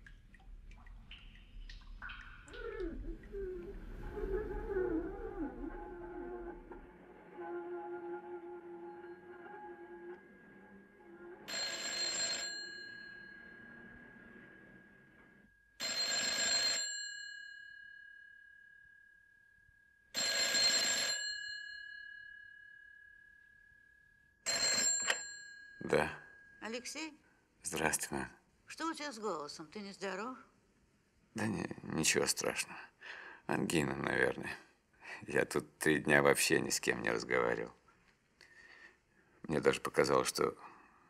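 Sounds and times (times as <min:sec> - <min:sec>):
telephone bell ringing: 0:11.5 - 0:13.8, 0:15.8 - 0:18.2, 0:20.1 - 0:22.4, 0:24.4 - 0:25.8
steady ringing tone: 0:11.5 - 0:14.0, 0:15.4 - 0:26.6.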